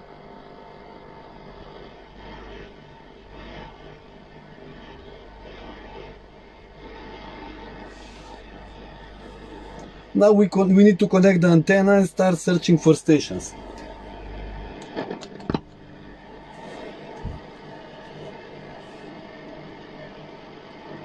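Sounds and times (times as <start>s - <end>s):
receiver hiss: 0.0s - 21.0s.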